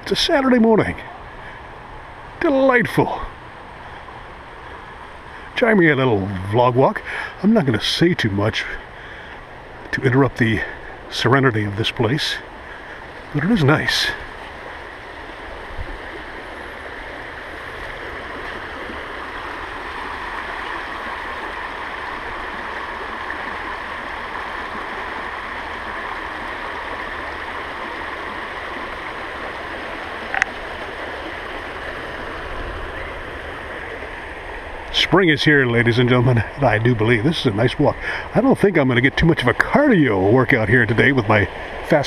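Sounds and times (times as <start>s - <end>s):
river water rushing over rocks: 8.3s - 42.0s.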